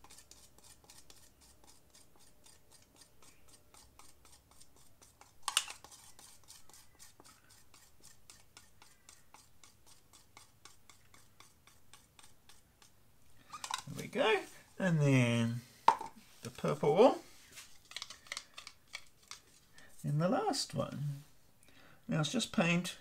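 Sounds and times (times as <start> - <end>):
stick scraping a plastic cup: 0.0 - 14.2, 15.9 - 19.7
man's voice: 13.9 - 15.7.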